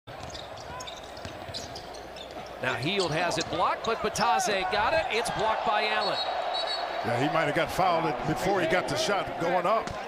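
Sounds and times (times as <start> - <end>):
shoe squeaks: 0.1 - 4.2
arena crowd murmur: 2.4 - 10.0.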